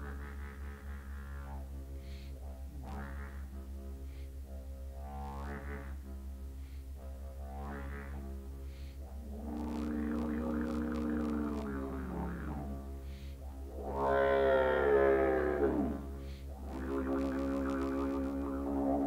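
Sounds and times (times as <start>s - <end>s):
didgeridoo drone and calls: 0.0s - 19.0s.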